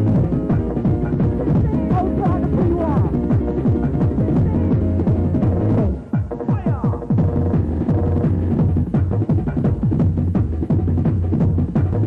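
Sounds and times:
low bass hum: 0.0 - 6.1, 7.0 - 12.0
heavy kick-drum hits: 0.0 - 12.0
loud happy hardcore dance music: 0.0 - 12.0.

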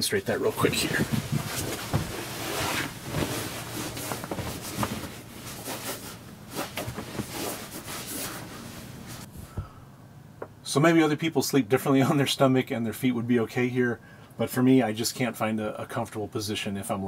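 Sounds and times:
rustling on bed cushions: 0.5 - 9.6.

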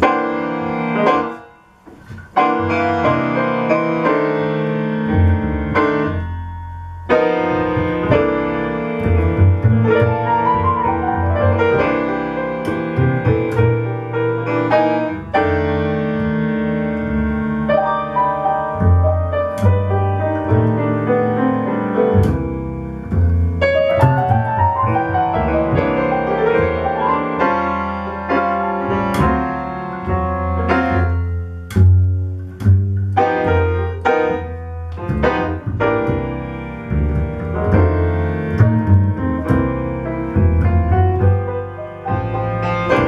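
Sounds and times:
jazz piano: 0.0 - 43.0
plucked double bass: 0.0 - 43.0.

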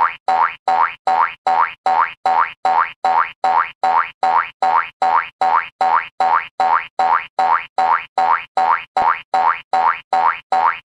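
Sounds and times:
cartoon boing sound effect: 0.0 - 10.8.

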